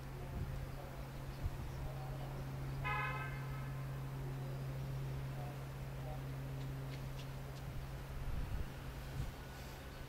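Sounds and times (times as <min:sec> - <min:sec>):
train horn toot: 0:02.8 - 0:04.0.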